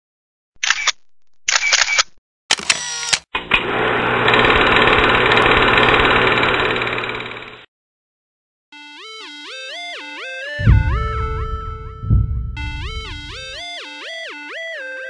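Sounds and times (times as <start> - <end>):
camera shutter clicks: 0.6 - 3.2.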